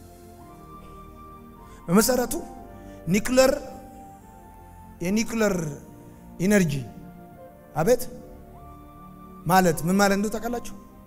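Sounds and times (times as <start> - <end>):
soft held music chord: 0.0 - 11.0
man preaching into a microphone: 1.9 - 3.8, 5.0 - 7.0, 9.4 - 10.9.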